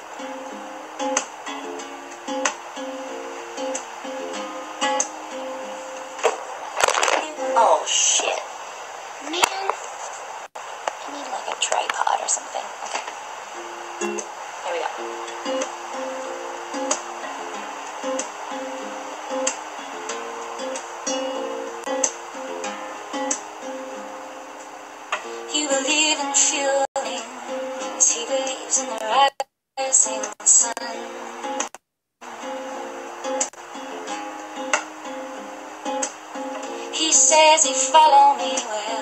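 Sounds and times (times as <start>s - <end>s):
fingerpicked acoustic guitar: 0.0s - 7.6s, 13.6s - 39.0s.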